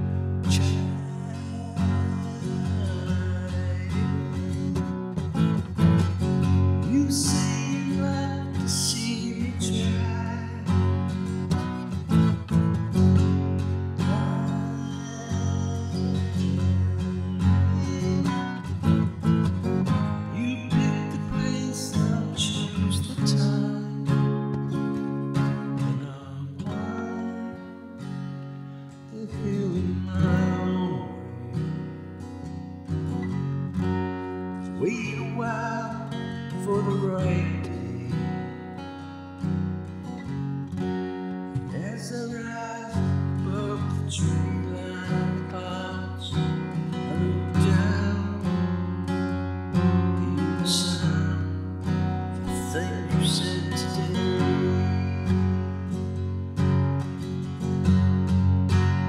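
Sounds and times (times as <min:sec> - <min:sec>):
acoustic guitar strummed and picked: 0:00.0 - 0:59.0.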